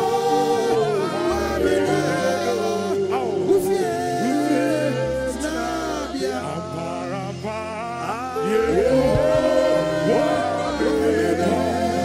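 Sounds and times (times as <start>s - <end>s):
gospel voices singing together: 0.0s - 12.0s
band with steady bass: 8.4s - 12.0s.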